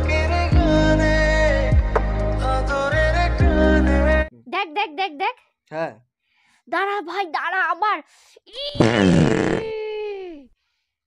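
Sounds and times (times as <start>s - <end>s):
comic fart sound effect: 8.7s - 9.7s.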